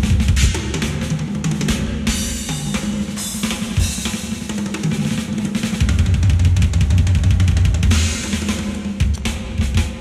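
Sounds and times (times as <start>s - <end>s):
fast drum kit with snare rolls: 0.0s - 10.0s.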